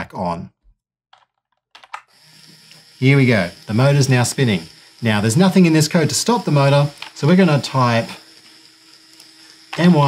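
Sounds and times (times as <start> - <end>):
small motor whirring: 2.1 - 10.0.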